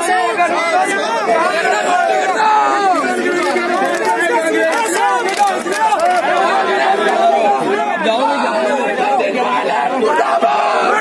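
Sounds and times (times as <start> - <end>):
men shouting and talking: 0.0 - 11.0.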